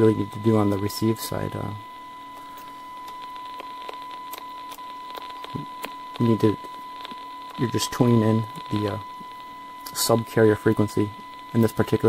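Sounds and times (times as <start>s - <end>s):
faint static hiss: 0.0s - 12.0s
steady test tone: 0.0s - 12.0s.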